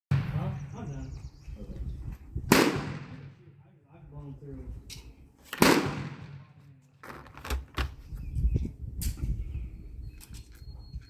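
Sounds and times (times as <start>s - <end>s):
low talk: 0.2s - 2.1s, 2.9s - 4.9s
gunshot with echo: 2.5s - 3.4s, 5.6s - 6.6s.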